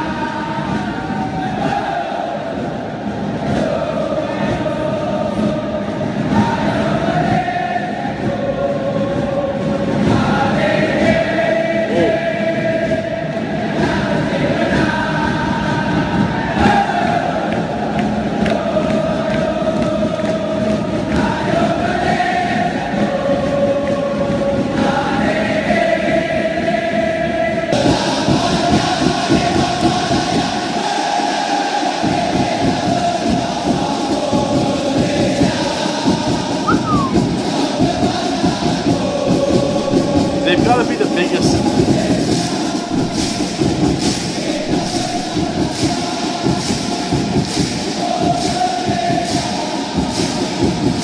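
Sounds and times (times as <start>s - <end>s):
stadium crowd singing a chant: 0.0s - 51.0s.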